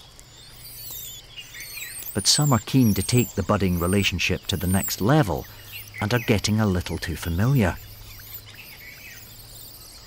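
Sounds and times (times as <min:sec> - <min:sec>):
high-pitched wavering chirps: 0:00.0 - 0:10.0
low steady hum: 0:00.0 - 0:10.0.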